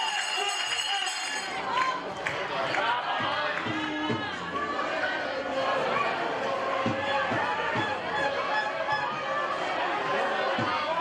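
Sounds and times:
women shouting and cheering: 0.0 - 11.0.

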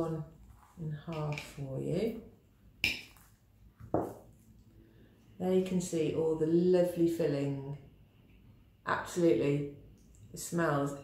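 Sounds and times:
knife set down on wooden table: 3.8 - 4.3.

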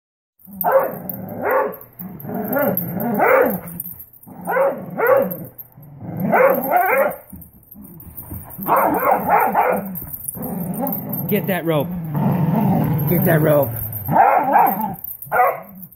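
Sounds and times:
dogs barking in play: 0.4 - 15.9.

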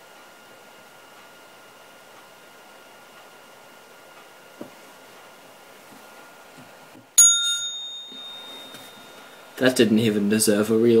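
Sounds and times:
bell ringing: 7.2 - 9.6.

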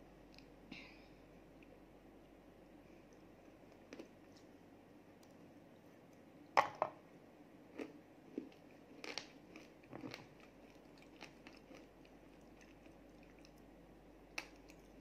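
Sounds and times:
chewing with crunches: 2.9 - 4.6, 7.7 - 15.0
cookie bite crunch: 7.8 - 13.6, 14.2 - 15.0.

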